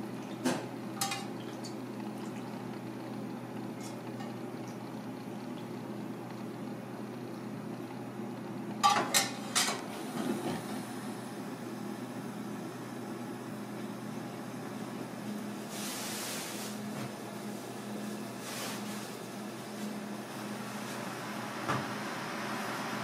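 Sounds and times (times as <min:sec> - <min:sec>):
steady low hum: 0:00.0 - 0:18.6.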